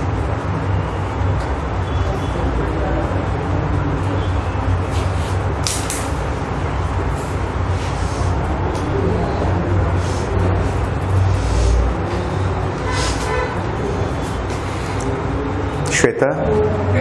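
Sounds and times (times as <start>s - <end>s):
low rumbling noise: 0.0s - 15.9s.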